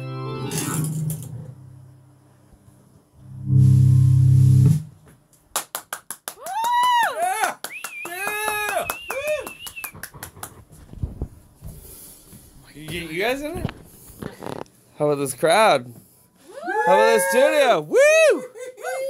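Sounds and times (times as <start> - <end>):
organ chord: 0.0 - 1.1, 3.2 - 4.9.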